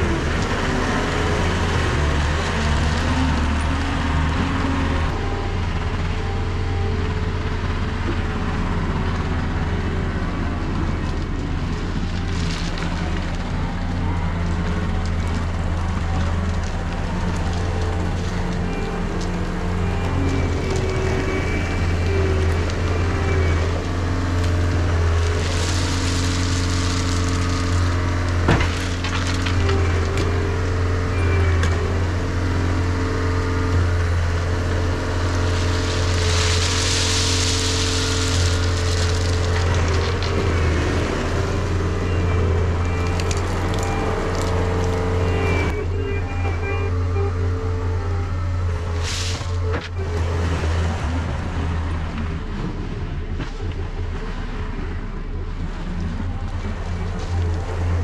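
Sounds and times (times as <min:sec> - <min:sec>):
loader engine running: 0:00.0 - 0:58.0
gravel pouring from bucket: 0:25.2 - 0:29.5, 0:35.3 - 0:40.5.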